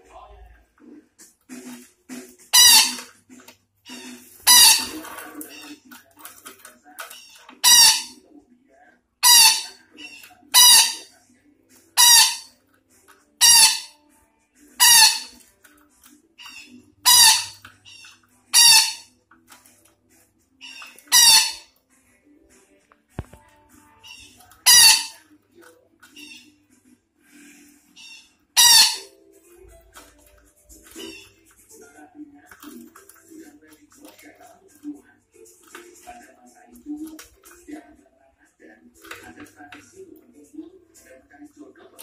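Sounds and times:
parakeet screeching calls: 2.5s - 3.0s, 3.9s - 5.8s, 7.1s - 8.2s, 9.2s - 11.1s, 12.0s - 12.5s, 13.4s - 13.9s, 14.8s - 15.4s, 16.4s - 19.1s, 20.6s - 21.7s, 24.0s - 25.2s, 26.2s - 26.5s, 28.0s - 29.1s, 30.9s - 31.4s.

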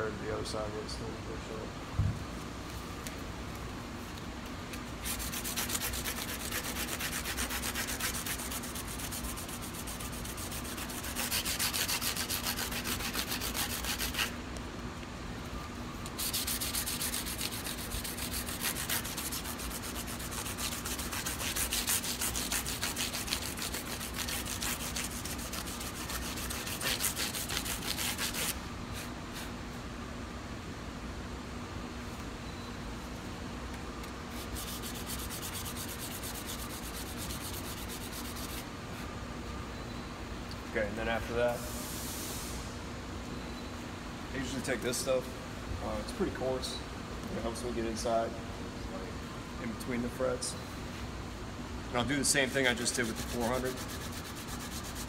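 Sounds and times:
sandpaper rubbing on frets: 5.0s - 14.4s, 16.1s - 29.5s, 34.3s - 38.6s, 52.2s - 55.0s.

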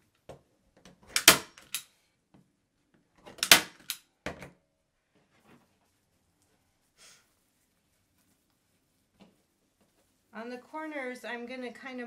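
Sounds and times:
staple gun clack: 1.2s - 1.9s, 3.4s - 4.0s
faint knocks and rustles: 4.2s - 10.4s.

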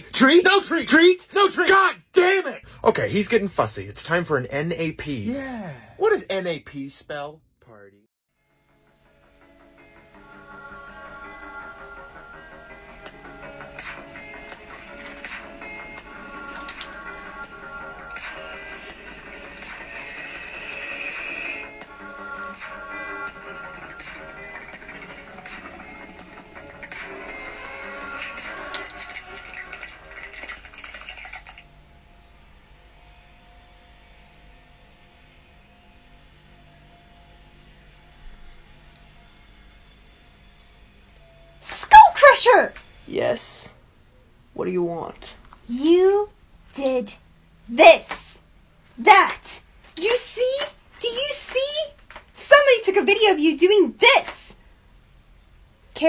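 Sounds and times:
background music with beat: 9.4s - 29.4s.

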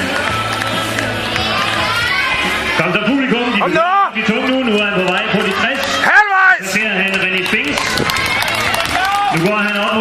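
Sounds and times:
crowd noise: 0.0s - 10.0s
man calling out commentary: 2.8s - 7.7s.

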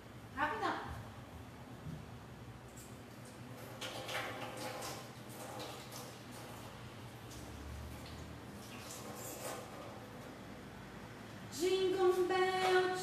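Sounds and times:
hands washing at a sink: 3.1s - 10.3s.

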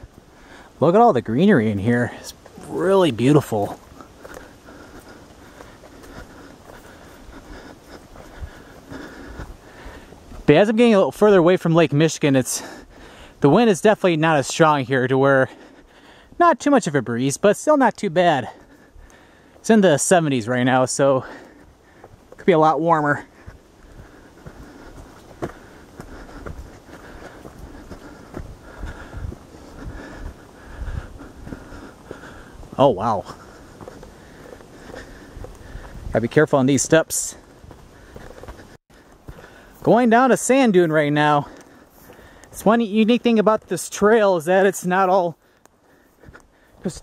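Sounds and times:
footsteps on dirt trail: 0.0s - 47.0s
wind rumble on microphone: 25.9s - 32.8s, 34.7s - 36.4s.

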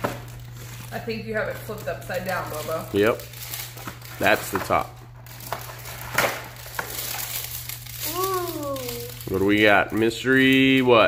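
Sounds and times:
plastic handling: 0.0s - 10.6s
plastic capsule crinkling open: 1.6s - 9.6s.

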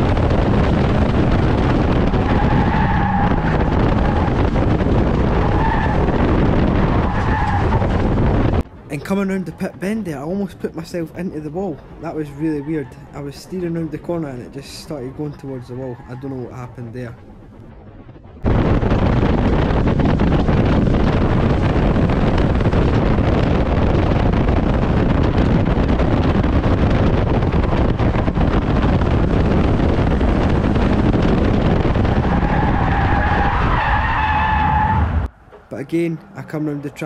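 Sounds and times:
race car engine and road noise: 0.0s - 37.0s.

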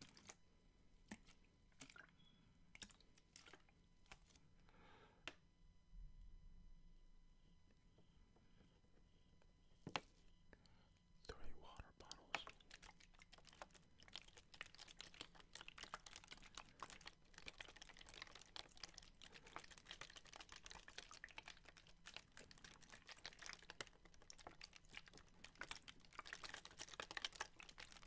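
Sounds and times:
plastic bottles clicking and crinkling: 12.4s - 28.0s.

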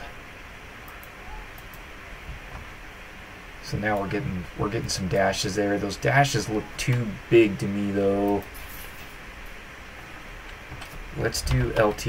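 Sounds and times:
low room hiss: 0.0s - 12.0s
computer mouse clicks: 0.9s - 1.9s.

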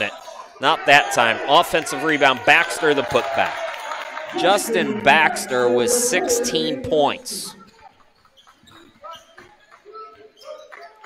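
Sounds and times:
faint voices: 4.3s - 7.9s.

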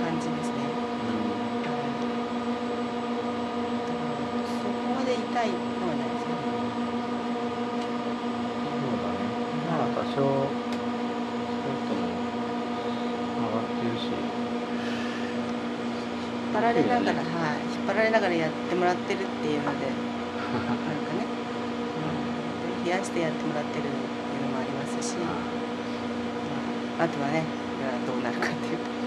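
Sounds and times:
faint voices: 0.0s - 2.0s, 8.6s - 10.5s, 11.6s - 12.2s, 13.4s - 14.2s, 16.0s - 21.3s, 22.0s - 28.9s
steady machine hum: 0.0s - 29.0s.

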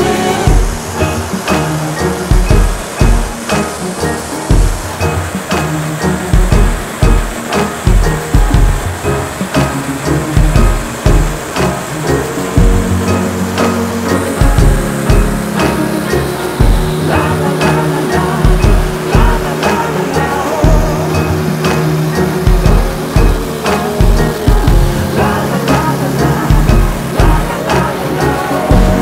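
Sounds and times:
heavy drum beat: 0.0s - 29.0s
sustained bass notes: 0.0s - 29.0s.

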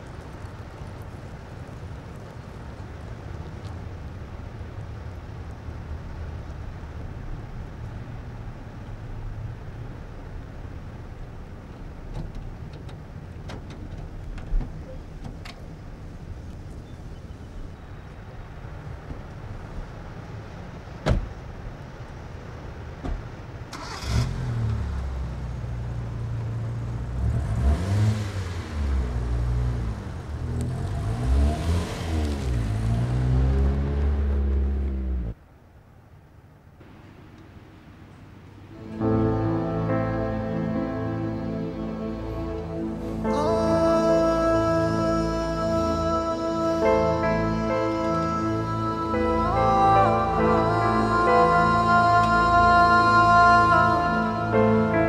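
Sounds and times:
low outdoor rumble: 0.0s - 55.0s
car engine starting and revving: 23.6s - 35.4s.

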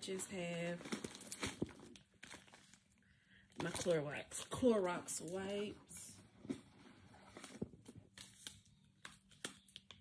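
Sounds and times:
soft clicks and rustles of packet: 0.2s - 5.4s, 6.5s - 10.0s.

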